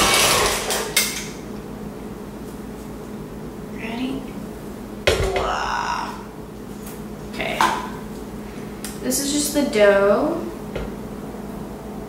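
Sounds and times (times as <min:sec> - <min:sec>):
stand mixer motor running: 0:00.0 - 0:01.0.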